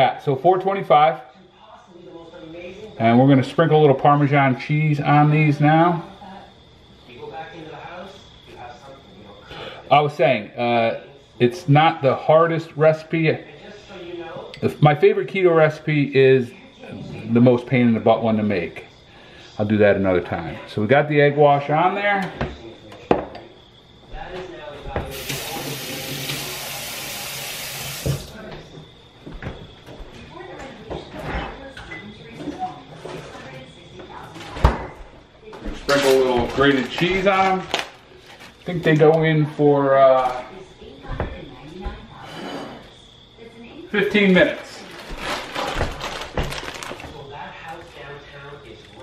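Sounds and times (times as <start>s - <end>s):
steady hiss: 25.1s - 28.4s
faint indistinct voices: 28.1s - 49.0s.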